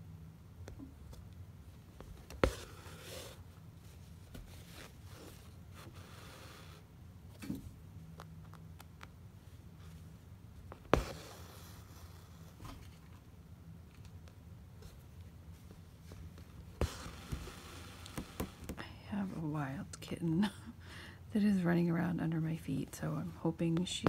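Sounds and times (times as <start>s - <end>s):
thread rasping through fabric: 10.7s - 12.6s, 16.8s - 18.8s.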